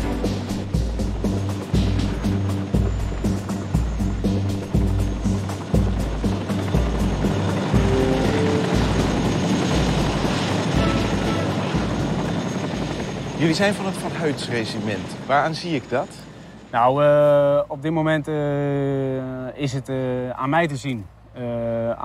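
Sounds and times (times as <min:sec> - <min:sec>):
helicopter rotor and engine: 0:00.0 - 0:20.6.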